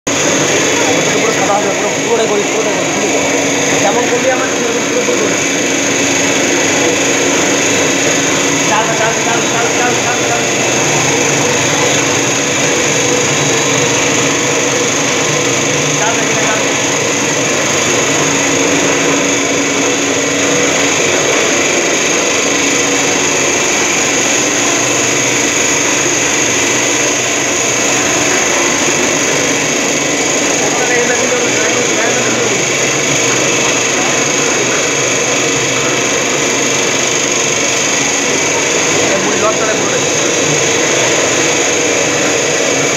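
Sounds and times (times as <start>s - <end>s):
machine humming with high hiss: 0.1s - 42.9s.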